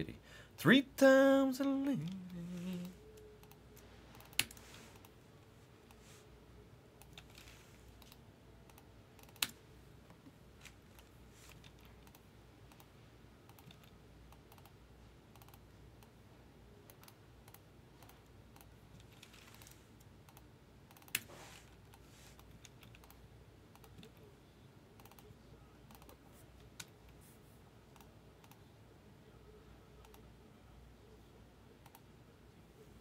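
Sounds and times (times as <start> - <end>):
keyboard and mouse clicks: 1.8 - 5.2, 7.0 - 16.2, 16.8 - 24.3, 25.0 - 25.3, 25.9 - 27.2, 30.0 - 30.3, 31.8 - 32.1.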